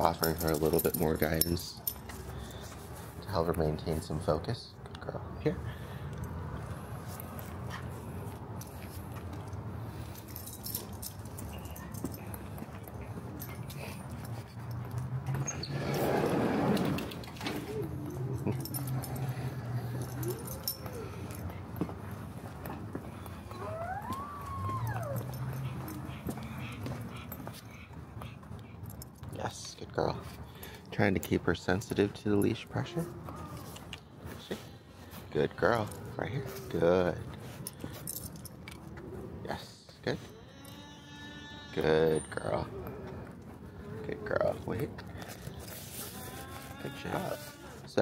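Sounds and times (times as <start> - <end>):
small dog whining: 17.4 - 21.5, 23.4 - 28.0.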